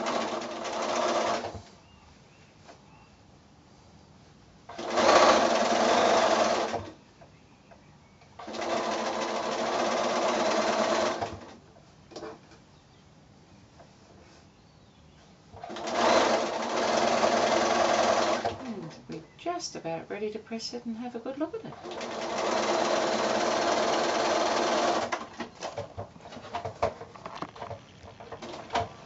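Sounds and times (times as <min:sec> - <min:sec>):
sewing machine stitching: 0:00.0 - 0:01.7, 0:04.7 - 0:07.0, 0:08.4 - 0:11.6, 0:15.6 - 0:18.9, 0:21.7 - 0:29.0.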